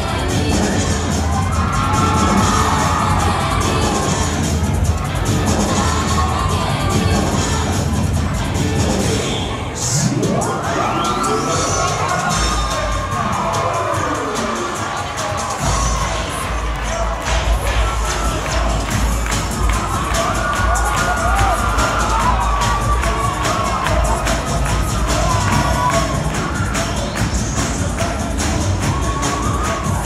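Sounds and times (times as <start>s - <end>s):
children shouting: 0.0s - 8.0s, 10.4s - 30.0s
cheerleading music with bass beat: 0.0s - 30.0s
crowd cheering: 0.0s - 30.0s.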